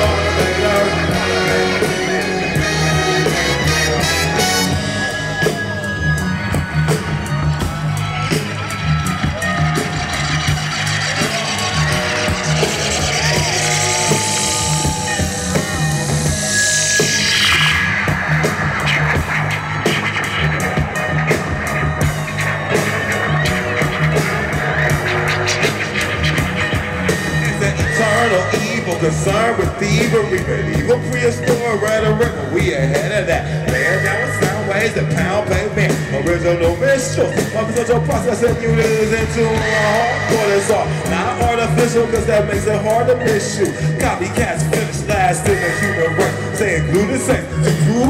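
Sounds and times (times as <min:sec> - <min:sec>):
hip-hop band with orchestra: 0:00.0 - 0:48.0.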